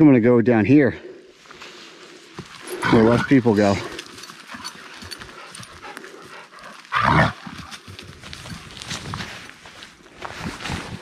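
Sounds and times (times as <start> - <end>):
footsteps on dry leaves: 1.4 - 11.0.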